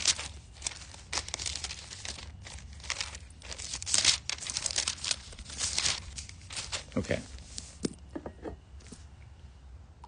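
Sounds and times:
thin paper pages rustling: 0.0s - 8.0s.

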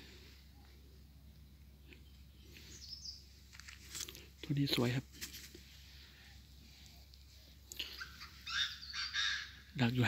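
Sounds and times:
francolin calling: 7.5s - 10.0s.

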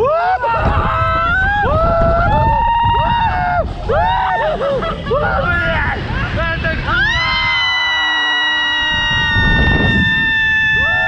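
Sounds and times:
people shrieking and laughing: 0.0s - 11.0s
wind rumble on microphone: 0.0s - 11.0s
long high scream: 7.0s - 11.0s.

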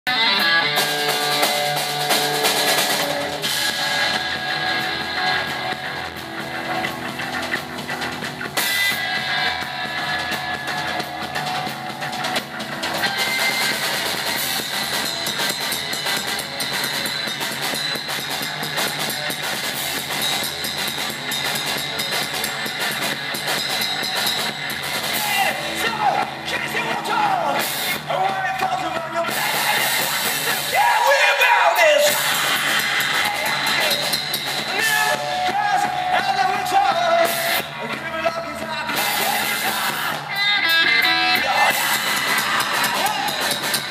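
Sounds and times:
bass guitar: 0.1s - 43.9s
distorted electric guitar: 0.1s - 43.9s
drum kit: 0.1s - 43.9s.

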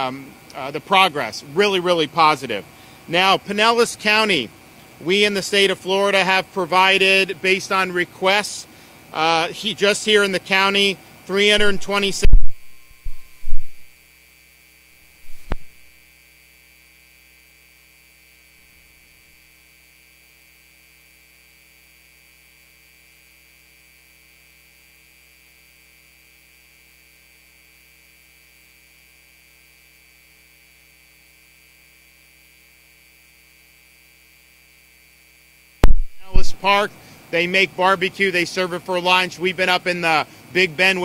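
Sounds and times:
electrical mains hum: 0.0s - 41.0s
sharp click: 15.3s - 15.8s, 35.8s - 36.4s
low thump: 35.8s - 36.2s.

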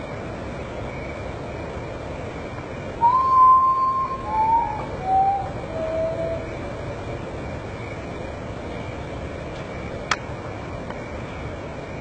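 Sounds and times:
low background hiss: 0.0s - 12.0s
bird whistling descending notes: 3.0s - 6.6s.

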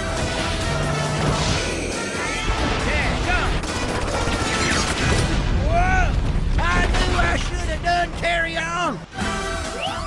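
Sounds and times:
action music: 0.0s - 10.0s.

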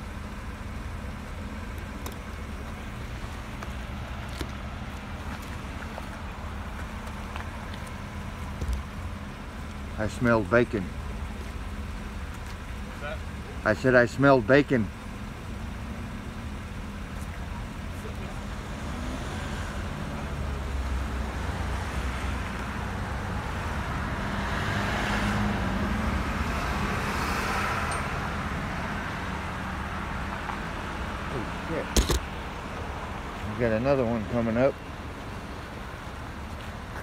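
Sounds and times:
idling engines hum: 0.0s - 37.0s
vehicle passing by: 18.1s - 31.9s.

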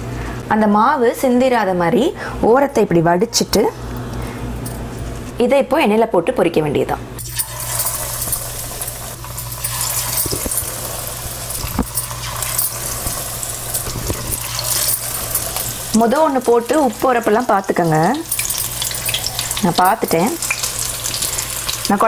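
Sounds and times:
fish deep-frying in hot oil: 7.2s - 22.0s.

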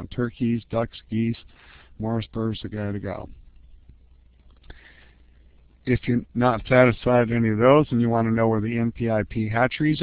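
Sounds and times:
man speaking: 0.0s - 3.4s, 5.8s - 10.0s
man breathing in: 1.5s - 2.0s, 4.6s - 5.3s.

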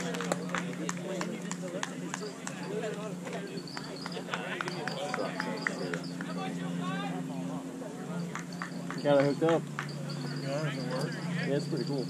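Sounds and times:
indistinct voices chattering: 0.0s - 12.0s
steady low hum: 0.0s - 12.0s.

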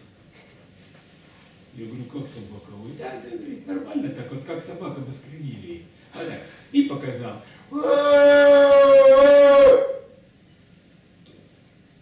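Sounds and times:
man imitating dog howl: 7.7s - 10.2s.

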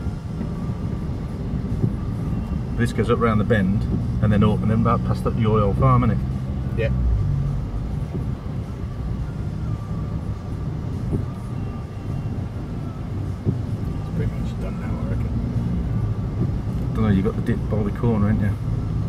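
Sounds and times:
vehicle engine rumble inside cabin: 0.0s - 19.0s.

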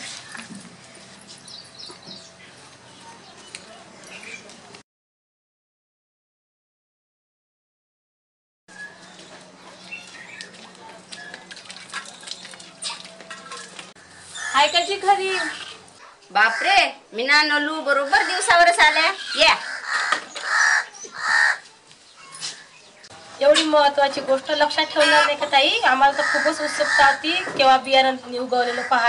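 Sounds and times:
crow cawing: 16.4s - 17.0s, 18.0s - 21.6s, 26.1s - 27.6s, 28.7s - 29.0s.

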